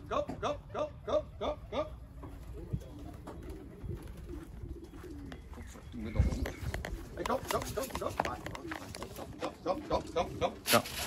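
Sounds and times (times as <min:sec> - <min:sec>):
man calling pigeons: 0:00.0 - 0:11.0
pigeons cooing: 0:00.0 - 0:11.0.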